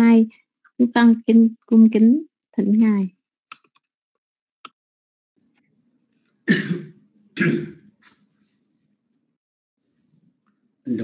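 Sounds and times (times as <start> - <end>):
person coughing: 6.5 - 7.9.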